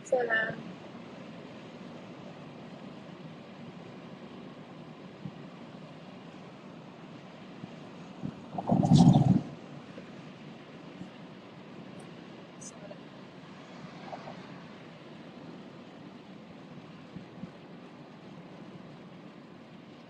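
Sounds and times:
vehicle cabin hum and hiss: 0.0 - 20.0.

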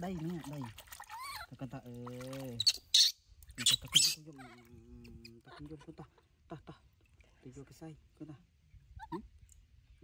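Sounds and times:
water splashing: 0.0 - 4.7
baby monkey squeaking: 2.6 - 4.5.

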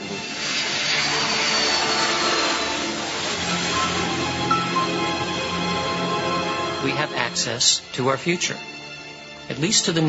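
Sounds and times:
jet aircraft passing: 0.0 - 7.4.

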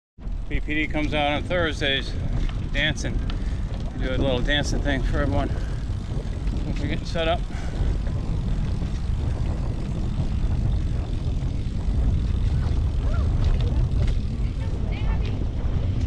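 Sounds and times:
wind buffeting microphone: 0.2 - 16.0
faint voices: 12.3 - 16.0.

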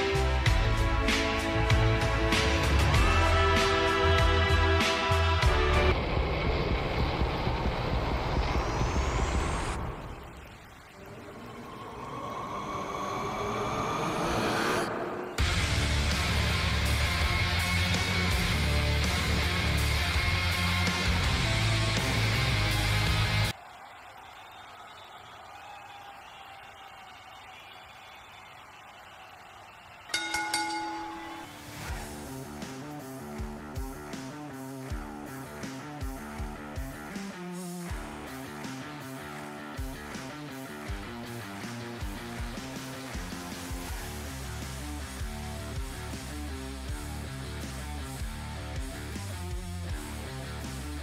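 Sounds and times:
drone: 5.4 - 16.6
dark rumbling noise: 5.9 - 16.1
rising whoosh: 11.0 - 15.8
wrestling ring bell ringing: 30.1 - 31.7.

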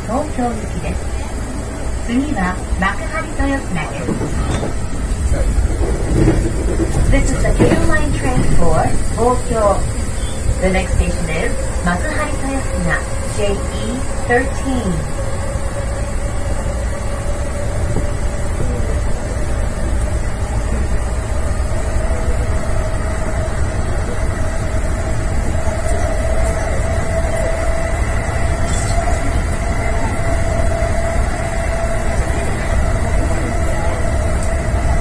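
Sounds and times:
train wheels rumbling on rails: 0.0 - 35.0.

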